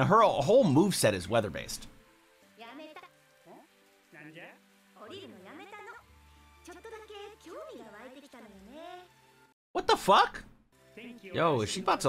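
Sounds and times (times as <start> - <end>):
dialogue: 0.0 - 12.0
soft background music: 0.0 - 12.0.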